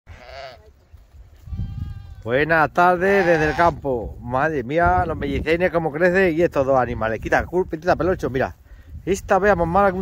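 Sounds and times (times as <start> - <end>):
lamb bleating: 0.1 - 0.7, 1.5 - 2.3, 3.0 - 3.8
faint steady bleat: 0.1 - 0.8, 1.4 - 2.3, 3.0 - 3.8.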